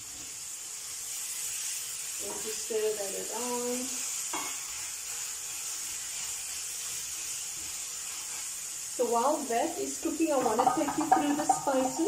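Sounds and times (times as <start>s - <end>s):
onions sizzling in frying pan: 0.0s - 12.0s.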